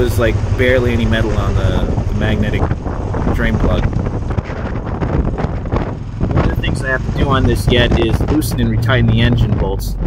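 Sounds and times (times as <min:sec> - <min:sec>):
motorcycle engine: 0:00.0 - 0:10.0
road noise: 0:00.0 - 0:10.0
wind buffeting microphone: 0:00.0 - 0:10.0.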